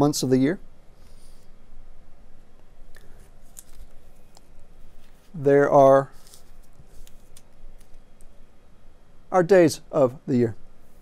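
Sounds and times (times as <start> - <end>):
low room hum: 0.0 - 11.0
paper rustling: 3.0 - 5.4, 6.1 - 8.0.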